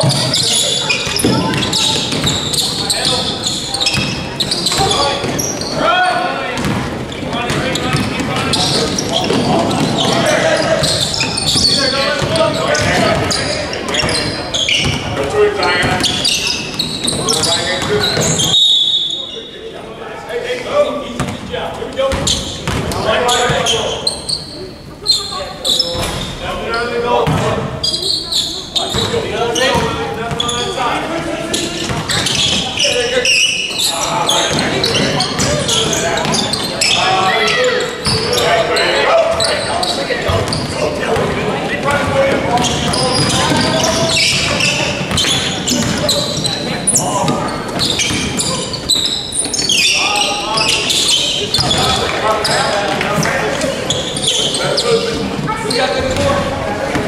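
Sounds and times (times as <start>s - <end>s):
voices calling out: 0.0s - 57.0s.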